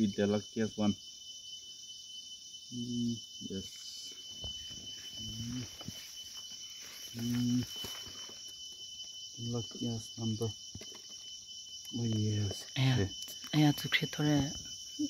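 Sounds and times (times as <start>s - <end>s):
crickets and insects chirping: 0.0s - 15.0s.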